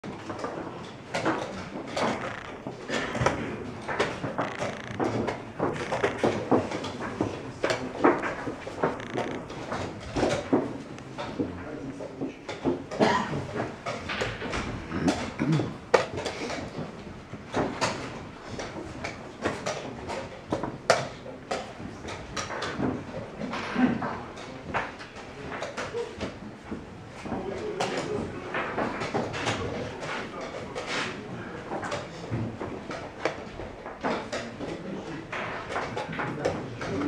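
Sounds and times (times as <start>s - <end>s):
chess pieces knocking on board: 0.1s - 11.5s, 12.3s - 37.0s.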